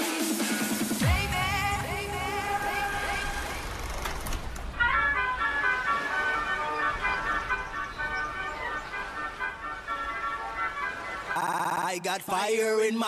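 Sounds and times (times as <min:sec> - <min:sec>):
instrumental dance music: 0:00.0 - 0:03.2.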